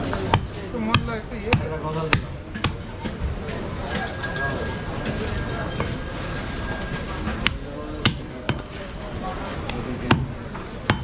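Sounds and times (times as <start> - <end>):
shop noise: 0.0 - 11.0.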